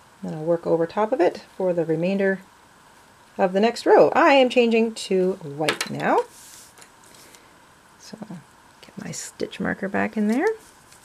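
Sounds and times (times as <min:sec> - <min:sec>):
soft rustle of hands handling crochet: 0:06.0 - 0:07.4.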